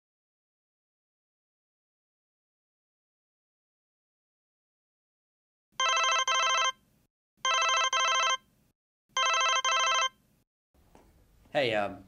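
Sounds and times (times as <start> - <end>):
mobile phone ringtone: 5.8 - 6.8, 7.4 - 8.5, 9.2 - 10.2.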